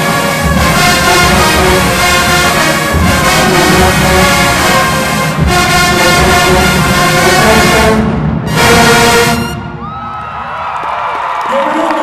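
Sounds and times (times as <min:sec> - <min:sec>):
marching band brass and drums: 0:00.0 - 0:11.1
crowd cheering and whooping: 0:09.6 - 0:12.0.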